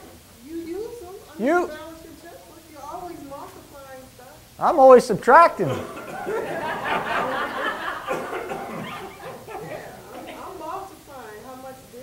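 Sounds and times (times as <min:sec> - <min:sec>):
people talking and laughing: 0:05.3 - 0:12.0.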